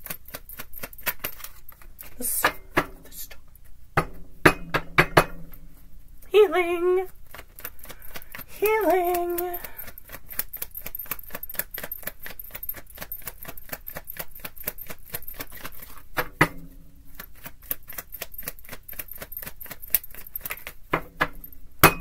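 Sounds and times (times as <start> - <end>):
cards being shuffled: 0.0 - 2.4, 7.0 - 16.3, 17.1 - 20.9.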